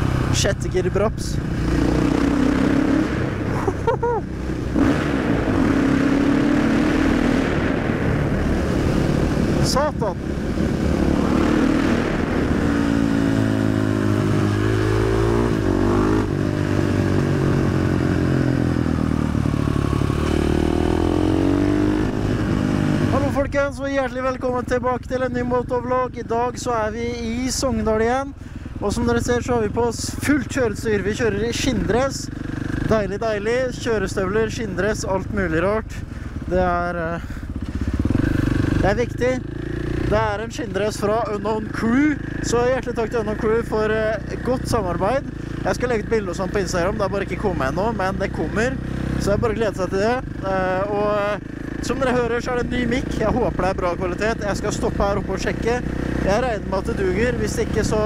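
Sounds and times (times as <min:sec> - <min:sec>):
loud motorcycle engine revving: 0:00.0 - 0:23.5, 0:28.9 - 0:33.6, 0:37.3 - 0:58.0.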